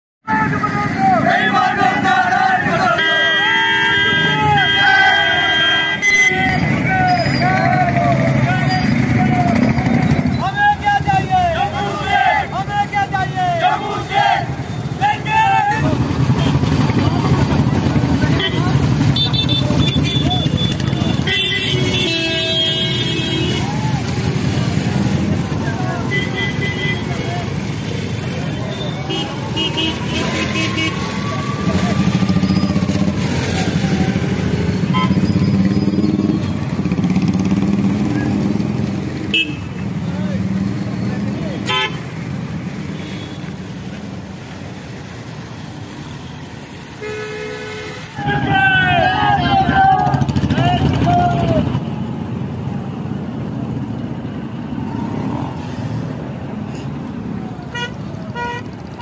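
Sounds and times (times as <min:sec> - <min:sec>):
horns honking: 0:00.3 - 0:12.5, 0:17.8 - 0:24.0, 0:25.8 - 0:33.0, 0:33.9 - 0:37.2, 0:39.3 - 0:40.0, 0:41.5 - 0:43.7, 0:46.1 - 0:52.0, 0:57.6 - 0:59.0
people shouting: 0:00.3 - 0:16.5, 0:23.3 - 0:26.4, 0:28.3 - 0:34.4, 0:48.1 - 0:51.8
motorcycle engines: 0:00.3 - 0:59.0.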